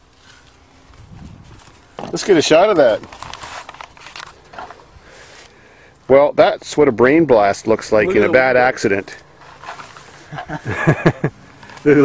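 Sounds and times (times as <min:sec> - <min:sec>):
camera handling clicks and rustles: 0:02.8 - 0:04.8, 0:11.4 - 0:11.9.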